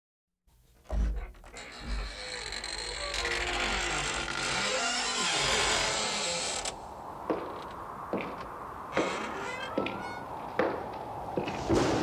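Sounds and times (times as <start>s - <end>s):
drawn-out creaking: 0.9s - 7.8s, 8.4s - 10.7s.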